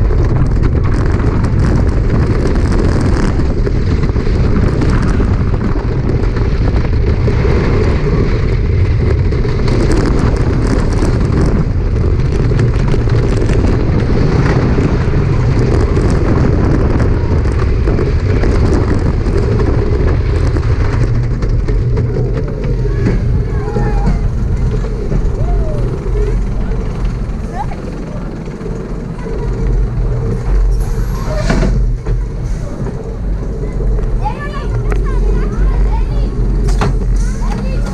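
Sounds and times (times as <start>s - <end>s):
roller coaster rumbling and rattling: 0.0s - 37.9s.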